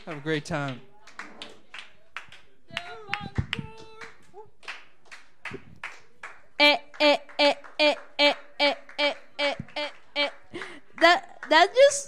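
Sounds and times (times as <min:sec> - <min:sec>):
small audience applauding: 0:00.0 - 0:12.0.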